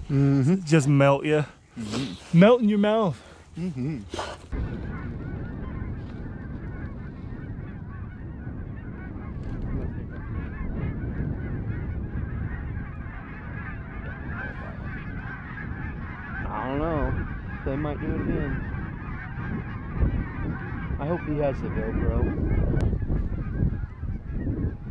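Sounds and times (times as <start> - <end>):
geese honking: 2.3 - 3.4, 4.1 - 24.9.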